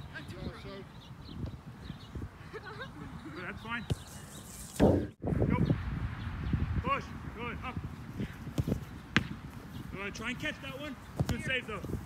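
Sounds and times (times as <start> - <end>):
ball kicked on grass: 8.4 - 9.6, 11.1 - 12.0.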